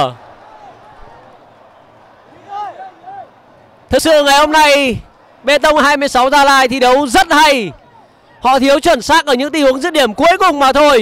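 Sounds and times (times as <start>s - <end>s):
distant shouts: 0.0s - 11.0s
football match ambience: 0.0s - 11.0s
man commentating: 2.3s - 3.3s, 3.9s - 11.0s.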